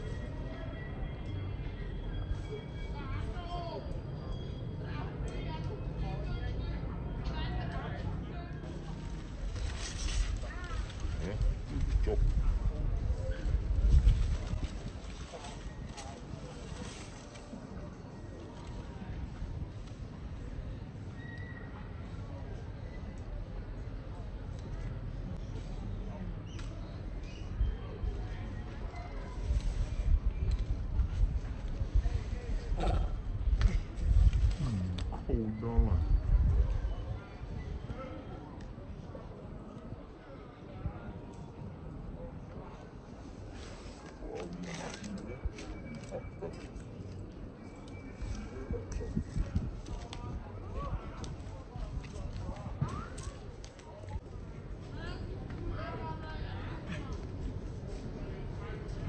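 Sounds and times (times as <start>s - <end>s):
low outdoor noise: 0.0s - 59.0s
indistinct voices: 32.6s - 37.9s.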